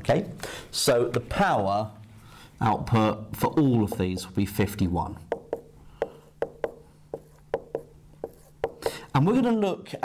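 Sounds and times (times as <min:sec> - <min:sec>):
marker pen writing on whiteboard: 0:03.7 - 0:04.4, 0:05.3 - 0:09.0.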